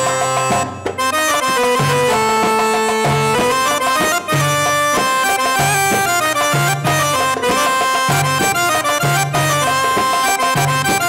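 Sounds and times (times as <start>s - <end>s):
accordion melody: 0.0s - 11.0s.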